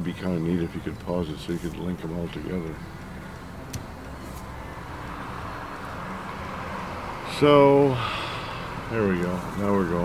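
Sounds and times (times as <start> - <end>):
road noise hiss: 0.0 - 10.0
car engine hum: 0.3 - 10.0.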